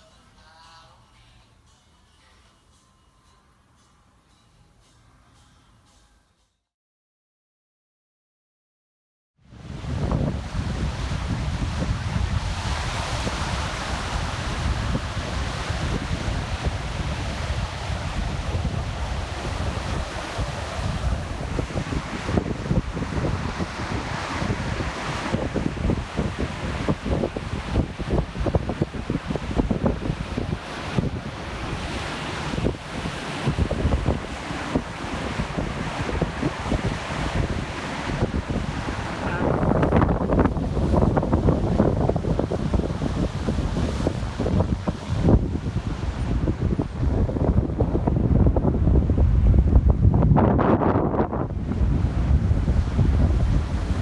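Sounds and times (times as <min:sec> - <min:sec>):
wind buffeting microphone: 0:09.4 - 0:54.0
ocean surf breaking: 0:09.5 - 0:54.0.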